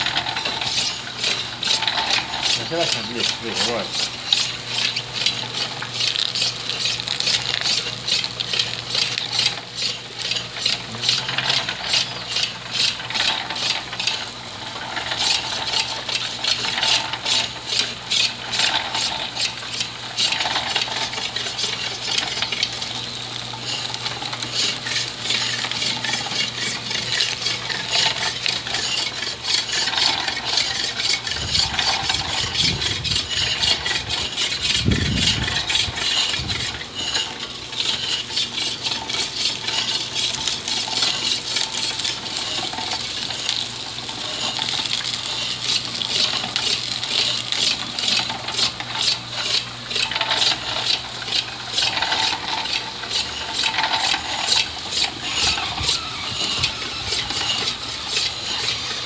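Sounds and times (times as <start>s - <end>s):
electric motor hum: 0.0s - 59.0s
geared rollers clattering: 0.0s - 59.0s
juice splashing into metal pail: 1.6s - 12.0s, 38.7s - 49.3s.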